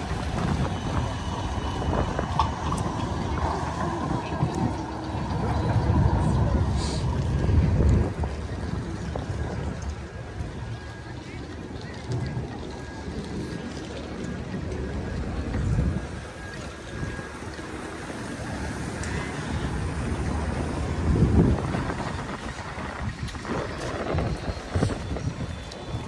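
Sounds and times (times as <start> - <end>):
faint street noise: 0.0 - 26.0
wind buffeting microphone: 0.0 - 26.0.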